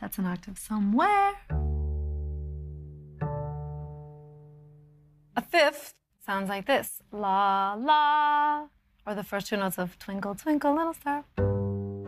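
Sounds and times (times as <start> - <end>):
double bass plucked: 1.4 - 5.3, 11.3 - 12.0.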